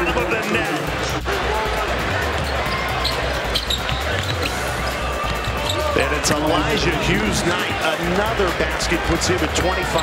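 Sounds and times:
arena noise: 0:00.0 - 0:10.0.

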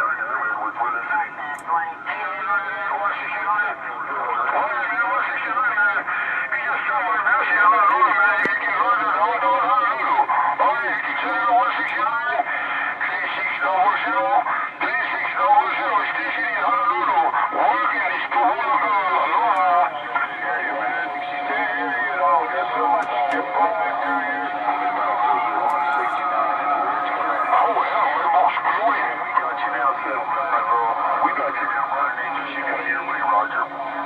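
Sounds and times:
distant radio voices talking: 0:00.0 - 0:34.0
steady radio whistle: 0:00.0 - 0:34.0.

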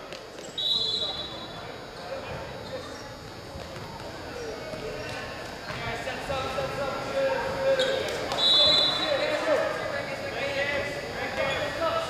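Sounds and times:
voices echoing in gym: 0:00.0 - 0:12.0.

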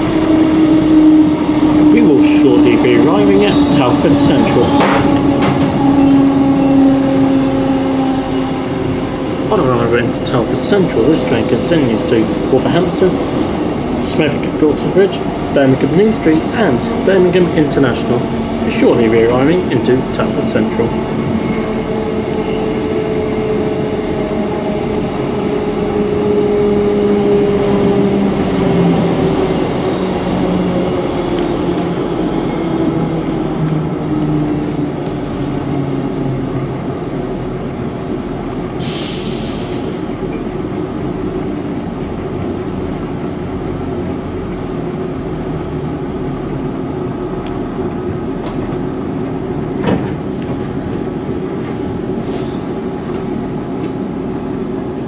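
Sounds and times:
train rumble with falling whine: 0:00.0 - 0:55.0
click: 0:53.8 - 0:54.0.

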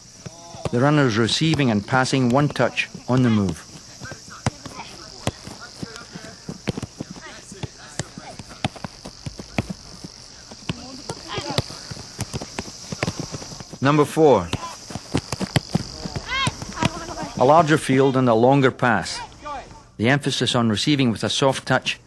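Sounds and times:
soccer balls kicked thuds: 0:00.0 - 0:17.6
steady high hiss: 0:00.0 - 0:21.7
faint voices of players: 0:02.5 - 0:13.4.

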